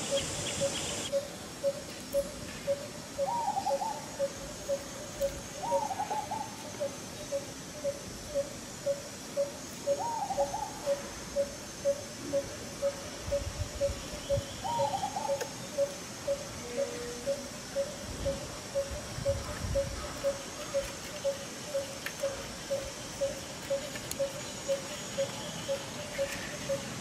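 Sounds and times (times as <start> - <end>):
bird hooting: 0.0 - 26.9.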